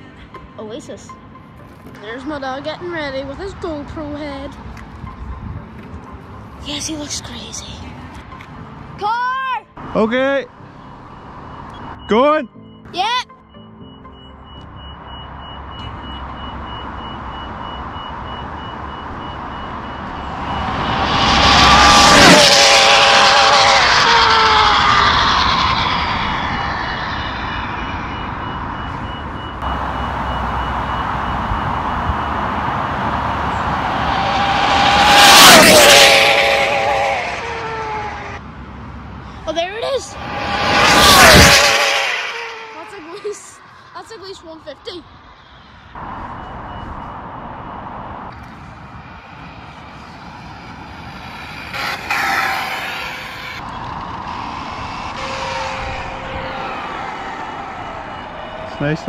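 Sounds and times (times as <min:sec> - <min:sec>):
loud vehicle passes: 0:15.6 - 0:59.0
electric rc car whine passing: 0:19.2 - 0:38.4, 0:39.4 - 0:44.2, 0:48.9 - 0:59.0.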